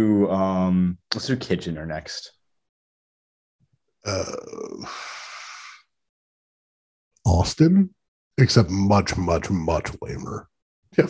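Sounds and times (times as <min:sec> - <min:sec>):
breathy exhale: 0:04.8 - 0:05.9.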